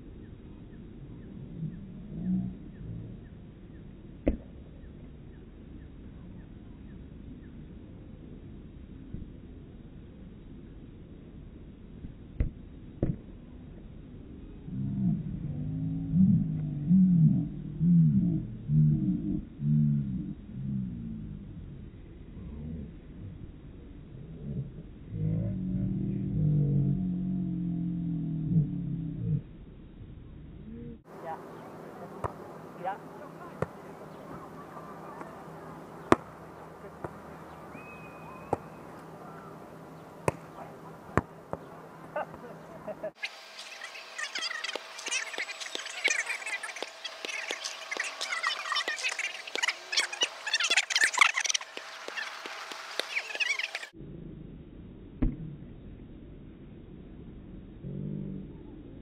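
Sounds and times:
volleyball being hit: 32.0s - 32.7s, 33.5s - 39.2s, 40.1s - 42.4s
ball kicked on sand: 36.1s - 36.3s.

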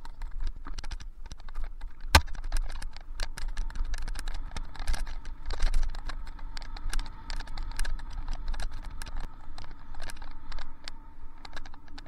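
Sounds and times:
bike rattling and clicking: 0.0s - 12.0s
low rumble: 3.4s - 12.0s.

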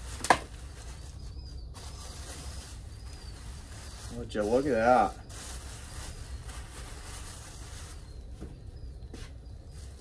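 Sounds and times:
plastic bag crinkling: 1.8s - 8.2s.

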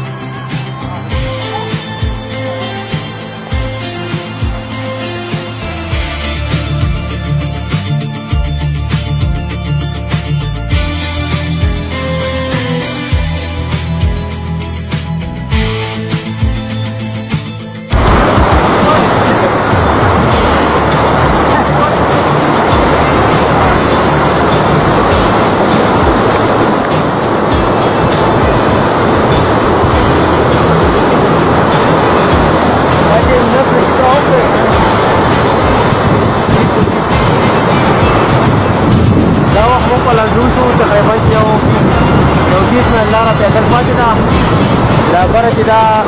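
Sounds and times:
river rushing over boulders: 17.9s - 46.0s
man's voice: 18.0s - 19.9s, 21.2s - 22.5s, 33.0s - 34.8s, 36.4s - 37.1s, 39.5s - 41.8s, 42.5s - 44.3s, 45.0s - 46.0s.

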